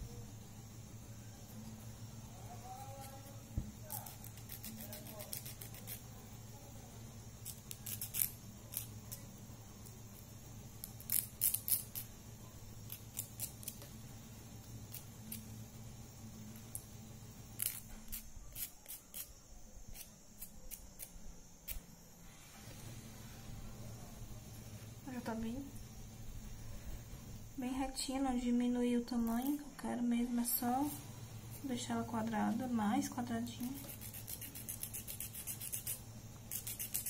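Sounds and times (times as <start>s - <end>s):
nail file scraping fingernails: 3.0s - 6.0s, 7.4s - 9.2s, 10.8s - 12.1s, 12.9s - 13.9s, 14.9s - 15.5s, 17.6s - 19.3s, 19.9s - 21.1s, 33.6s - 37.0s.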